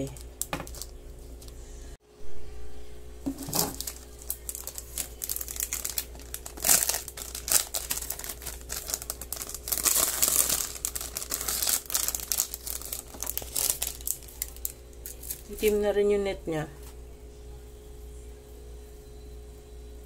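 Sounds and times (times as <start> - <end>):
plastic bag crinkling: 0.0 - 1.6, 3.3 - 15.9.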